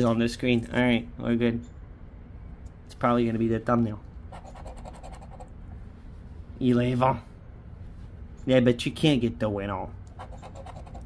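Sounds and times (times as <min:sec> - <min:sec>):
scratching lottery ticket: 0:04.3 - 0:05.5, 0:10.2 - 0:11.0.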